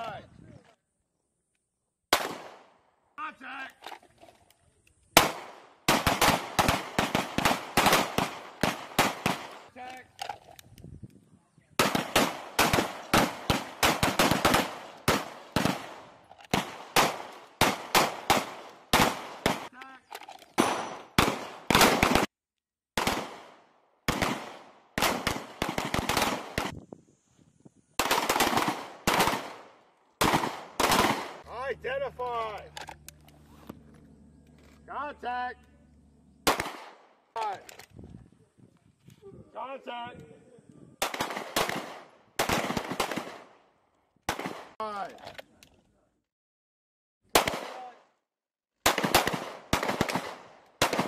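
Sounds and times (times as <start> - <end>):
pistols firing rapidly: 5.2 - 9.7, 11.8 - 19.7, 20.6 - 22.3, 23.0 - 26.7, 28.0 - 31.4, 36.5 - 37.0, 41.0 - 43.6, 47.4 - 47.9, 48.8 - 51.0.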